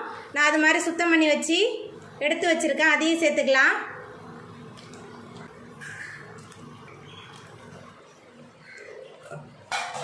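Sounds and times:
curry bubbling: 4.1s - 9.7s.

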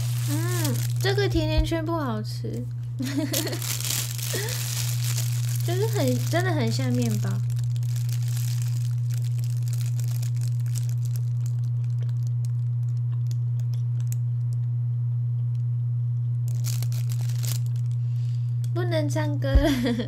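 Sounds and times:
plastic bag crinkling: 0.0s - 1.8s, 3.0s - 14.1s, 16.5s - 18.0s
steady low hum: 0.0s - 20.0s
biting and chewing: 3.2s - 14.1s.

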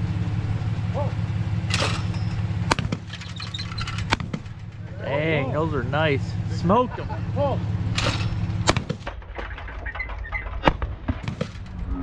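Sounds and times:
low engine hum: 0.0s - 12.0s
shotgun crack: 2.7s - 3.1s, 8.0s - 9.2s.

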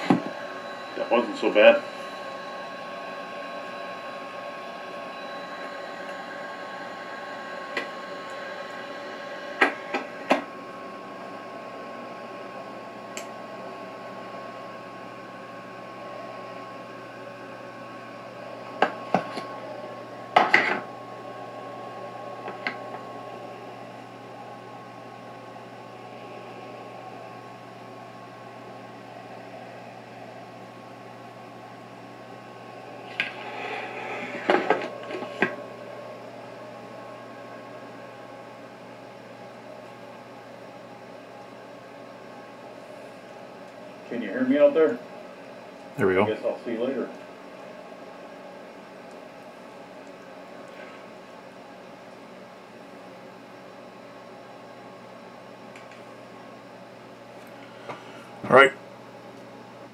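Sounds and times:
thin high tone: 0.0s - 24.6s
steady hum: 0.0s - 59.9s.

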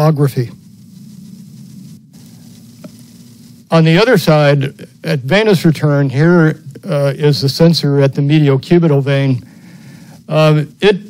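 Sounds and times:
background hiss and hum: 0.0s - 11.0s.

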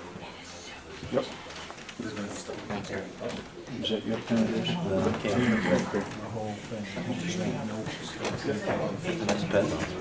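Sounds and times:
indistinct conversation: 0.0s - 10.0s.

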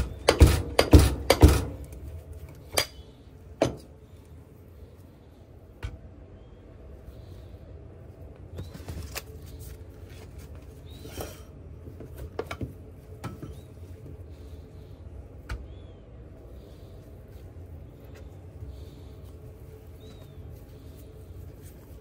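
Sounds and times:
steady low hum: 0.0s - 22.0s.

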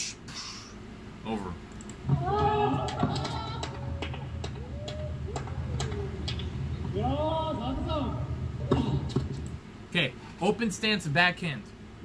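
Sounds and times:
steady low hum: 0.0s - 12.0s
sharp clicks: 1.7s - 2.0s.

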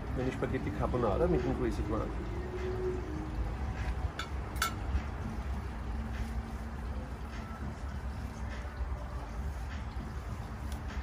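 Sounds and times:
low outdoor rumble: 0.0s - 11.0s
fork clinking on plate: 4.2s - 4.8s.

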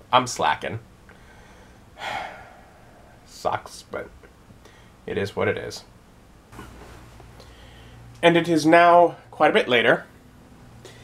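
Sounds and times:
man sighing: 2.0s - 3.3s.

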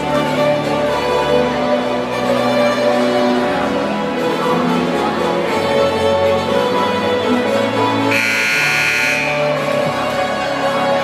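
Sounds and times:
music playing in a gym: 0.0s - 11.0s
scoreboard buzzer: 8.1s - 9.6s.

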